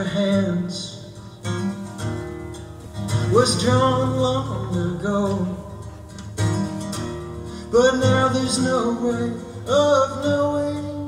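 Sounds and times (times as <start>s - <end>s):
acoustic guitar chords ringing: 0.0s - 11.0s.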